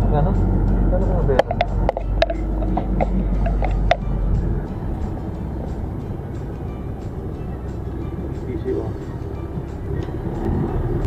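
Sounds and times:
car road and engine noise: 0.0 - 11.0
faint music: 0.0 - 11.0.

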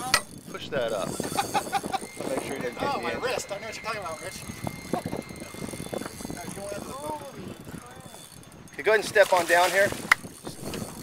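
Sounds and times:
wind and water hiss: 0.0 - 11.0.

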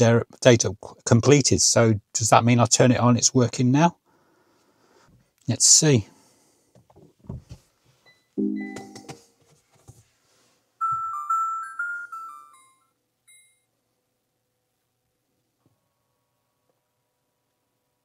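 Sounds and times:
soft knocks: 6.9 - 7.6
low electronic tone: 8.1 - 9.2
chime-like startup melody: 8.4 - 9.1, 10.8 - 13.6.

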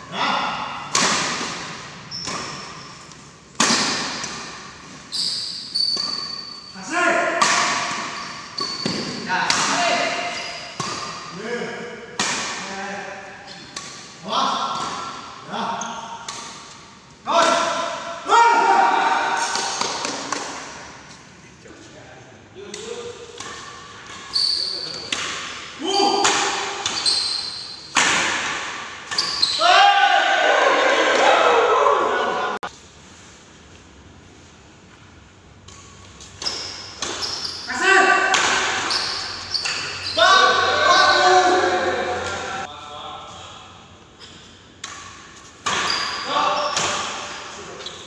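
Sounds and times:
man shouting in echoing hall: 0.0 - 0.9, 6.8 - 7.7, 17.2 - 19.6, 25.8 - 26.2, 29.6 - 32.6, 37.7 - 38.3, 40.2 - 43.3
racket hitting shuttlecock: 0.8 - 5.1, 5.8 - 6.4, 7.3 - 11.3, 12.1 - 12.7, 13.5 - 15.4, 19.2 - 20.8, 25.0 - 27.0, 27.9 - 29.6, 35.6 - 40.0, 44.8 - 47.5
sports shoes squealing on floor: 2.1 - 3.0, 5.1 - 6.9, 8.0 - 11.2, 24.2 - 25.1, 25.8 - 27.9, 29.1 - 30.0, 36.4 - 41.6, 45.7 - 47.1.

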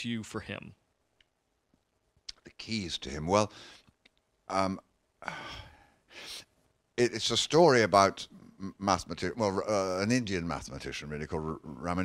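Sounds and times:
man sighing into microphone: 5.2 - 6.4.

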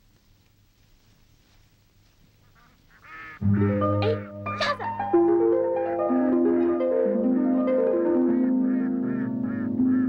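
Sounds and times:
duck quacks: 2.4 - 5.0, 8.3 - 10.0
film score music: 3.4 - 10.0.

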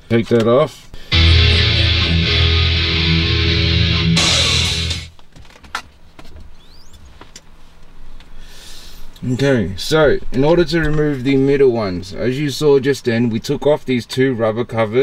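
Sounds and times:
loud music from car stereo: 1.1 - 5.1.

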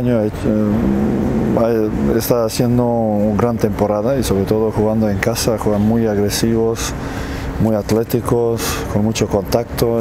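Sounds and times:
man talking: 0.0 - 7.0, 7.6 - 10.0.

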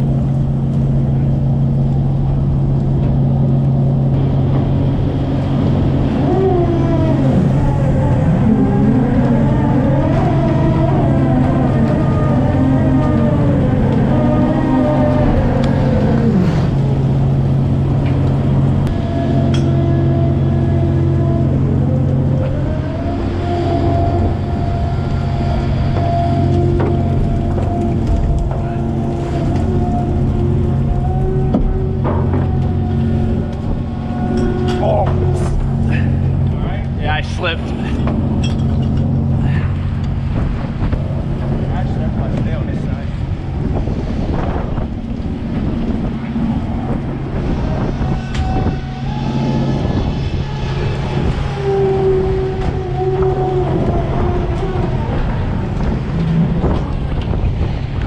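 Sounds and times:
engines and hydraulics droning: 0.0 - 58.0
hydraulic net drum whining: 0.0 - 58.0.

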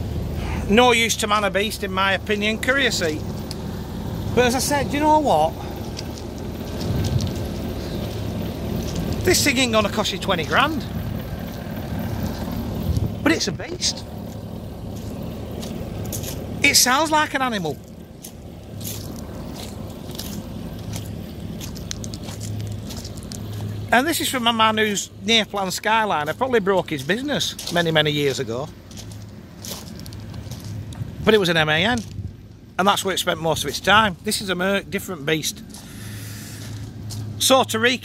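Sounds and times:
diesel engine idling: 0.0 - 38.0
footsteps on gravel: 1.6 - 37.4
hiss of noise: 35.8 - 37.3.

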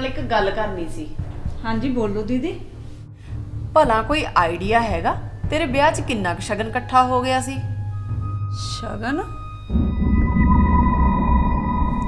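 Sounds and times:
dialogue: 0.0 - 9.6
thin steady high tone: 8.0 - 12.0
low deep drone: 9.3 - 12.0
dramatic music sting: 9.5 - 12.0.

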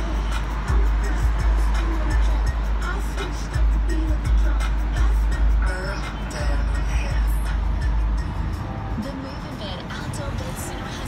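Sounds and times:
pop music on car radio: 0.0 - 11.0.

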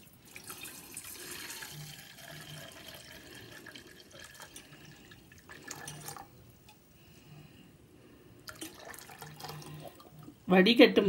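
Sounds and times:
liquid trickling through strainer: 0.0 - 6.8, 8.5 - 10.3.

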